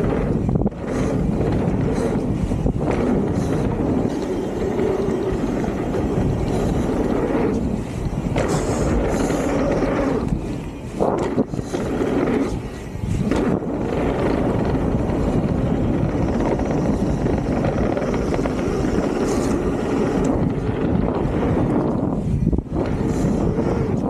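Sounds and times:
tyres rumbling on dirt trail: 0:00.0 - 0:24.0
wind on microphone: 0:00.0 - 0:24.0.

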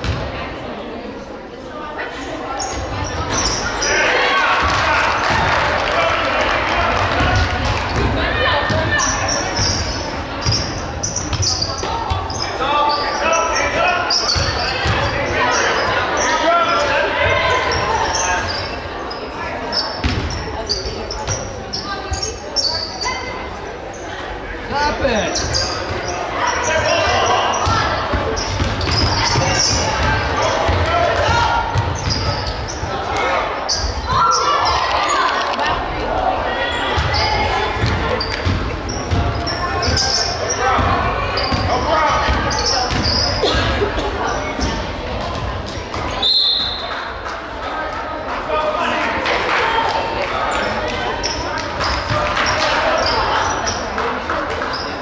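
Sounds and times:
voices calling out in gym: 0:00.0 - 0:55.0.

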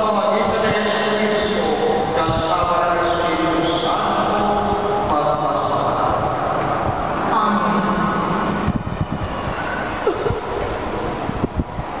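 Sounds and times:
murmur of voices and movement: 0:00.0 - 0:12.0.

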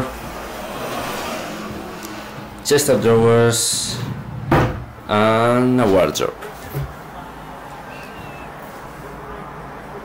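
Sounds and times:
car passing by: 0:00.0 - 0:04.8.

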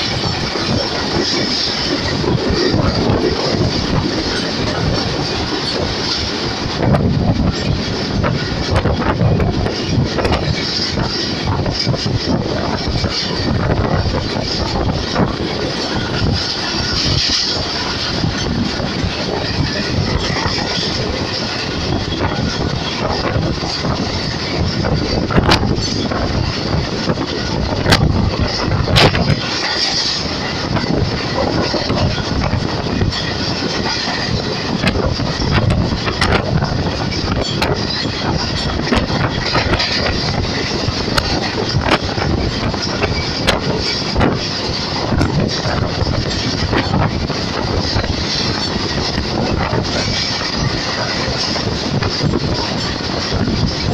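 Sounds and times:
train wheels rumbling on rails: 0:00.0 - 0:53.9.

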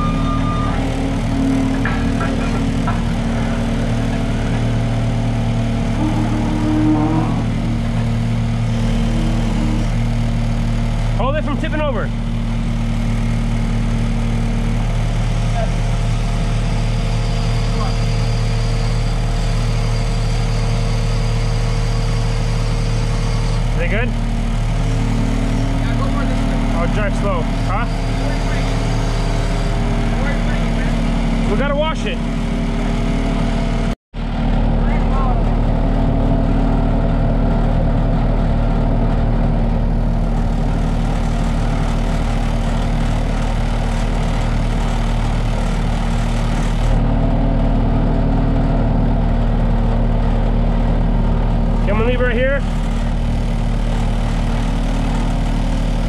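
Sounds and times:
loader engine running under load: 0:00.0 - 0:56.0.

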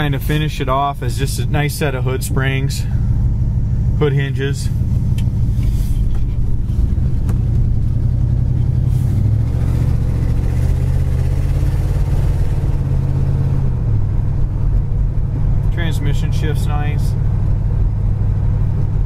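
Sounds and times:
car engine accelerating: 0:00.0 - 0:19.0.

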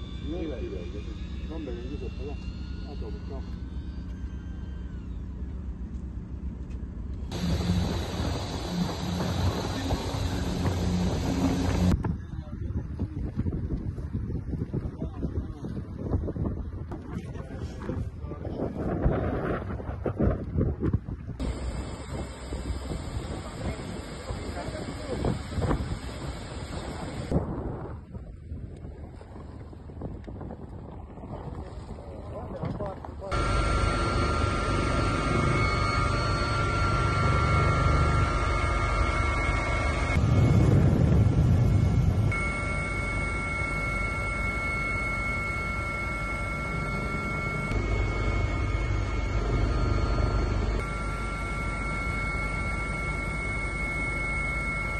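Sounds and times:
helicopter cabin noise: 0:00.0 - 0:20.0, 0:21.4 - 0:27.4, 0:31.2 - 0:54.9
wind on microphone: 0:07.3 - 0:33.4, 0:40.1 - 0:43.2.

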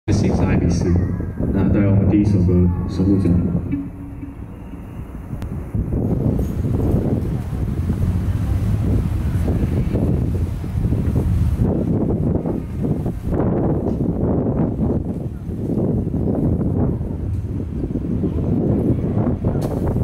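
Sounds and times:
wind buffeting microphone: 0:00.1 - 0:20.0.

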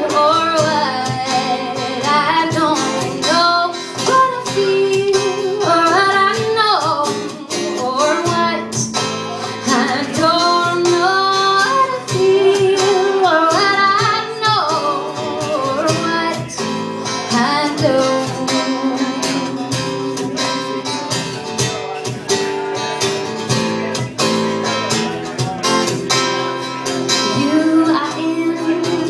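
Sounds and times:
woman singing: 0:00.0 - 0:21.0, 0:27.1 - 0:29.0
strummed acoustic guitar: 0:00.0 - 0:29.0.

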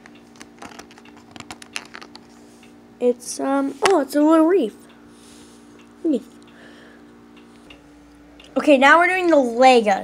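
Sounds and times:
faint steady hum: 0:00.0 - 0:10.0.

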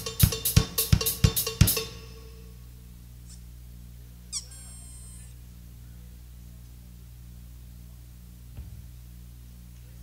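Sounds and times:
electrical hum: 0:00.0 - 0:10.0
high-pitched feedback squeal: 0:04.4 - 0:05.4.

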